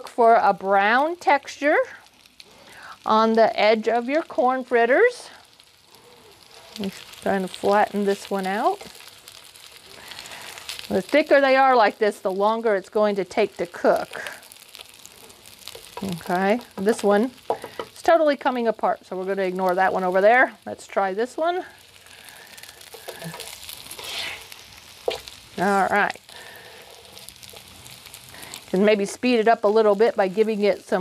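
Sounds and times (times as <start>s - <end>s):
fritters sizzling in oil: 0.0s - 31.0s
plastic spatula scraping pan: 22.9s - 25.8s.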